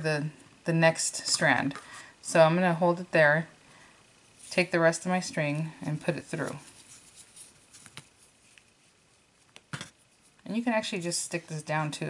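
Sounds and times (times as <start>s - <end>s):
short rustle: 6.3s - 9.0s.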